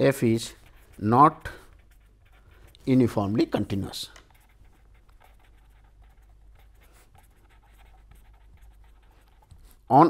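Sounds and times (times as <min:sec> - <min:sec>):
pen scratching on paper: 0:00.0 - 0:09.8.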